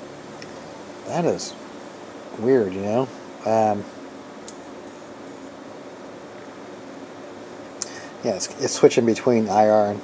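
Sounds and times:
computer fans humming: 0.0 - 10.0.

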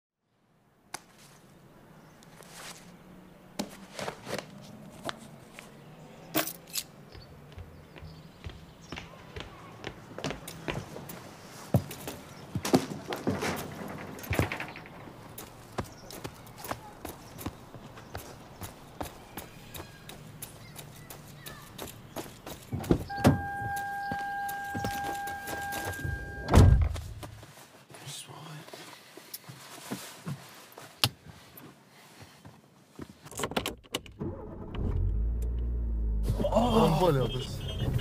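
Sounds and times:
footsteps on a hard surface: 7.1 - 13.4, 15.4 - 23.1, 24.1 - 26.0, 26.8 - 27.8
car engine starting and idling: 23.1 - 27.0, 34.1 - 38.0.

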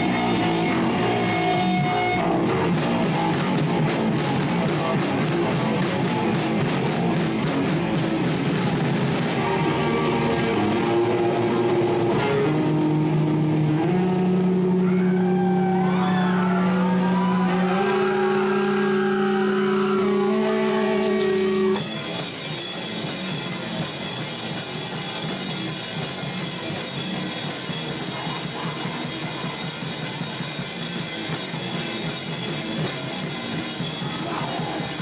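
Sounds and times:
drum kit with cymbals: 0.0 - 14.8, 21.0 - 35.0
distorted electric guitar: 0.0 - 35.0
heavy rock band playing: 0.0 - 35.0.

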